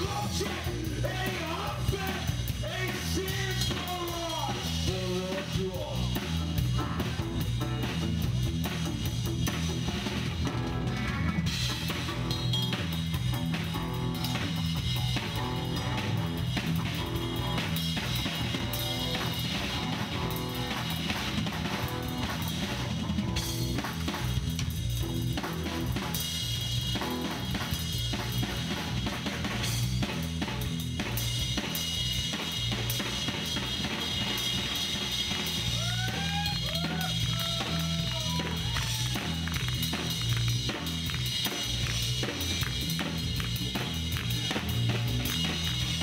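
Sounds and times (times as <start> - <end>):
drum kit playing: 0.0 - 46.0
pulsing bass line: 0.0 - 46.0.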